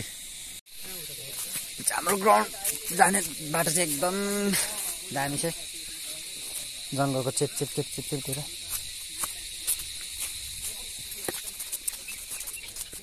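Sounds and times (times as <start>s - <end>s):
insects droning: 0.0s - 13.0s
footsteps on dry leaves: 0.8s - 6.9s, 8.4s - 13.0s
person's voice: 1.8s - 5.6s.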